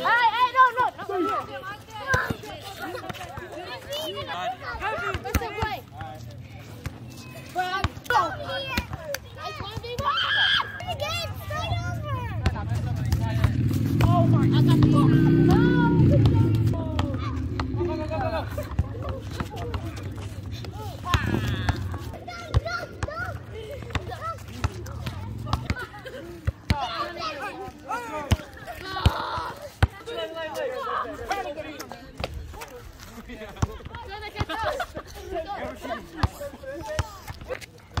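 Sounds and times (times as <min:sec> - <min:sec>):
players calling out: 0:00.0 - 0:38.0
vehicle passing: 0:11.8 - 0:22.2, 0:23.4 - 0:26.5.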